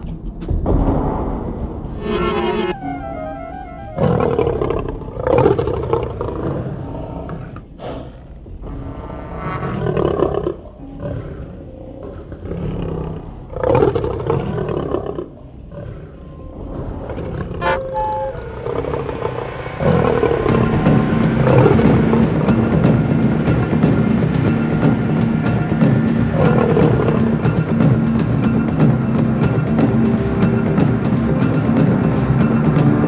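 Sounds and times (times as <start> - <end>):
music score: 2.0 - 5.8, 17.6 - 33.0
creature roaring: 18.6 - 22.3.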